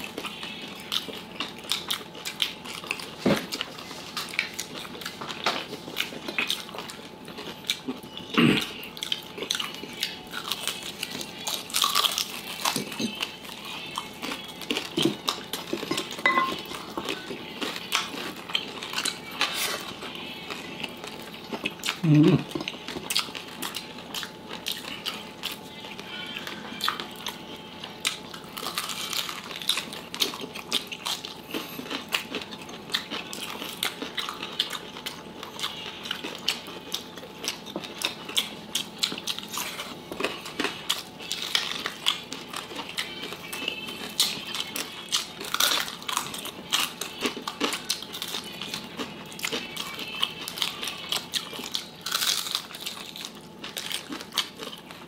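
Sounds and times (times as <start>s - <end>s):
chewing and crunching: 0.0s - 55.0s.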